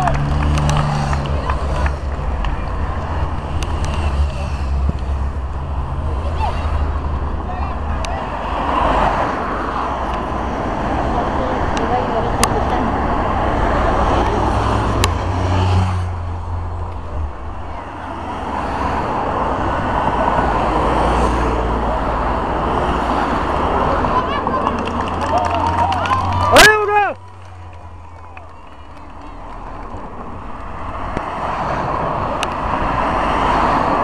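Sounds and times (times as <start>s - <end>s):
race cars passing: 0.0s - 34.0s
spectators chatting: 0.0s - 34.0s.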